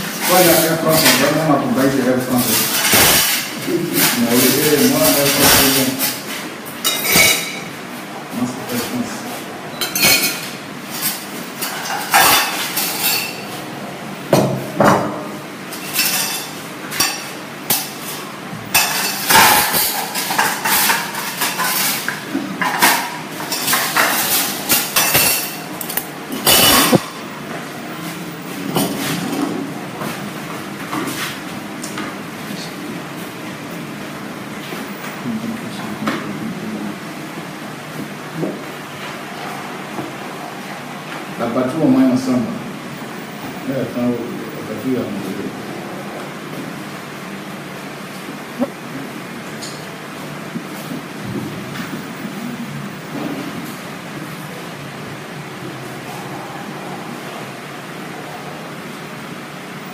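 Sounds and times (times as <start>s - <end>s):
spoons clinking on plates: 2.4s - 7.7s, 9.7s - 13.6s, 15.7s - 27.2s.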